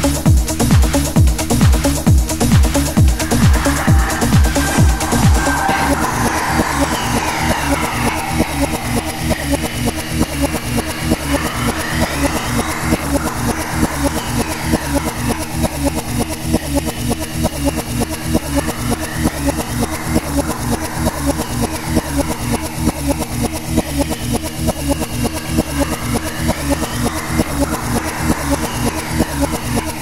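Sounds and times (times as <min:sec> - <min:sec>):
four-to-the-floor kick beat: 0:00.0 - 0:30.0
sweeping synth tones: 0:02.3 - 0:23.8.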